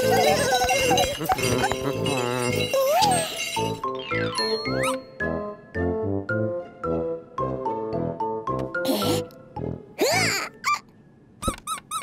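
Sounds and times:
bouncy plucked children's music: 0:00.0 - 0:10.8
high squeaky cartoon squeals: 0:02.4 - 0:05.1, 0:10.0 - 0:12.0.

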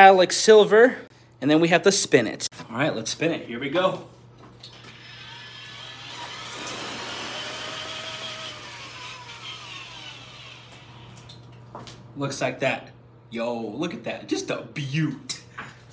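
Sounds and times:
electric drill whirring: 0:04.7 - 0:11.3.

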